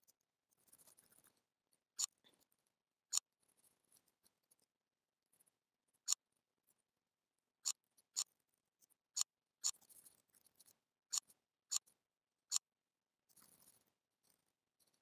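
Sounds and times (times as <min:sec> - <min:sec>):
mouse and keyboard clicks: 0:02.0 - 0:02.4, 0:07.6 - 0:08.3, 0:09.2 - 0:10.0, 0:10.6 - 0:11.9.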